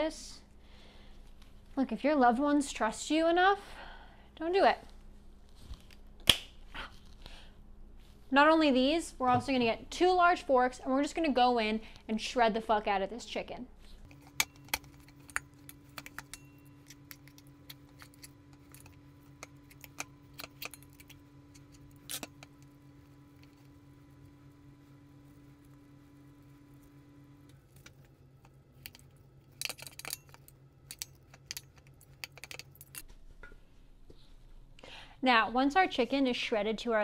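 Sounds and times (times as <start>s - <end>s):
low steady hum: 0.0s - 37.0s
forks scraping a bowl: 14.1s - 22.6s.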